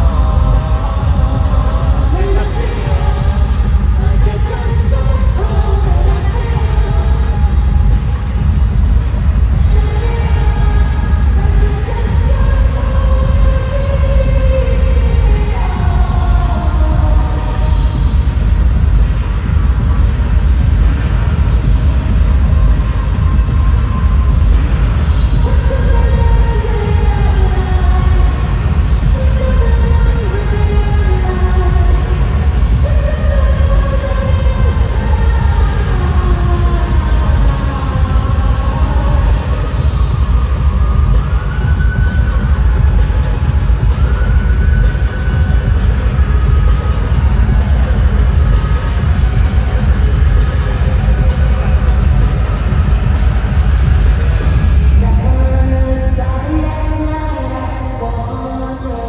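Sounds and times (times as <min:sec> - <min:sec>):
live pop concert music: 0:00.0 - 0:59.0.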